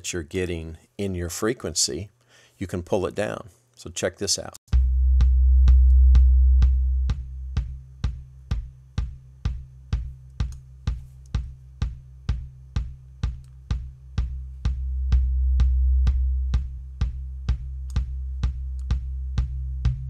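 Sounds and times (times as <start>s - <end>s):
kick drum loop: 4.7s - 20.0s.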